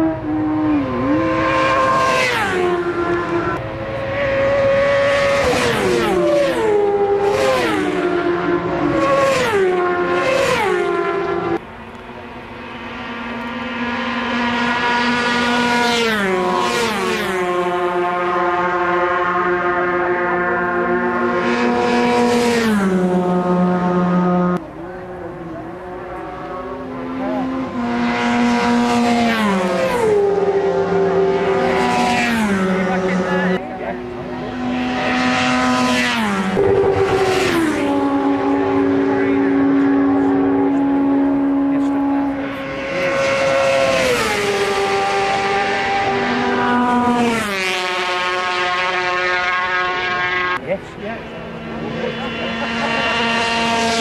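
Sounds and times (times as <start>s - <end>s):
racing motorcycles passing: 0.0s - 54.0s.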